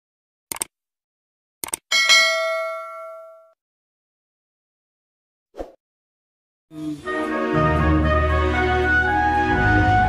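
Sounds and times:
notification bell ding: 0:01.9 - 0:03.5.

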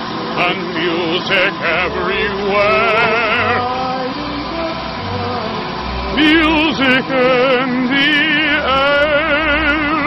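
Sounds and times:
diesel engine rumbling: 0:00.0 - 0:10.0
operatic group singing: 0:00.4 - 0:10.0.

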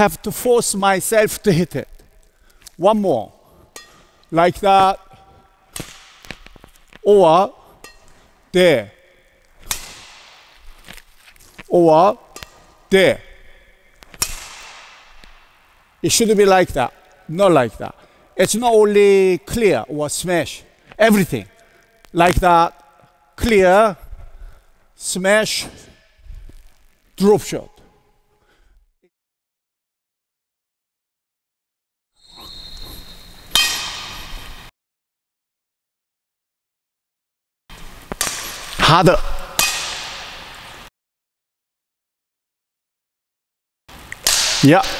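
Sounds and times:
racket striking shuttlecock: 0:05.1 - 0:07.0, 0:09.6 - 0:11.1, 0:12.2 - 0:12.8, 0:13.4 - 0:15.8, 0:33.5 - 0:34.4, 0:38.1 - 0:40.6, 0:44.2 - 0:44.9
racket swishing through air: 0:05.2 - 0:07.0, 0:14.1 - 0:15.7.

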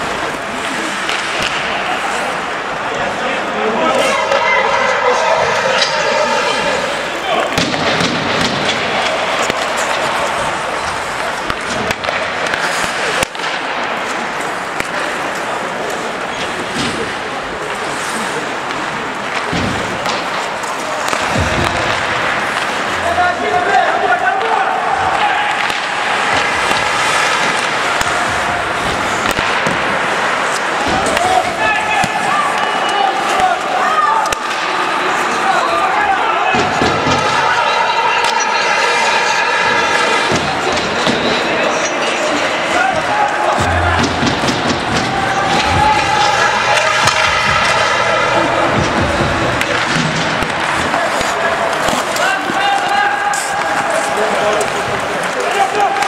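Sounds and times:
hockey sticks and puck knocking: 0:01.0 - 0:01.9, 0:07.4 - 0:17.8, 0:18.7 - 0:23.8, 0:24.4 - 0:32.7, 0:39.9 - 0:56.0
people shouting: 0:03.7 - 0:12.2, 0:20.6 - 0:29.6, 0:42.4 - 0:54.6.

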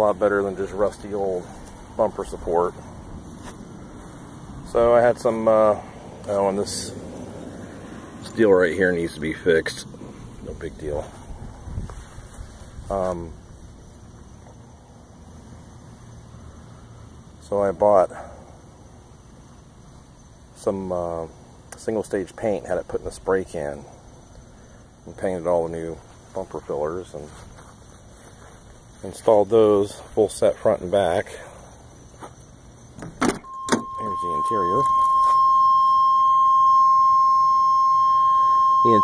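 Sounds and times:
person speaking: 0:00.0 - 0:02.9, 0:04.6 - 0:07.1, 0:33.7 - 0:35.4
faint steady background noise: 0:00.0 - 0:39.0
car key warning tone: 0:33.4 - 0:39.0.

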